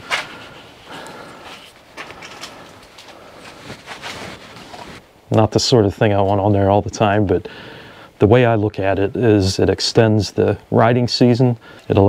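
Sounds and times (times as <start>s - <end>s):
hiss-like outdoor haze: 0.0s - 12.0s.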